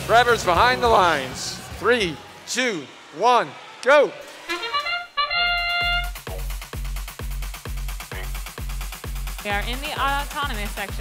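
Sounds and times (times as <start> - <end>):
rising bugle-like notes: 4.4 - 6.4
held brass chord: 4.5 - 6.4
dance music with fast drum beat: 5.4 - 11.0.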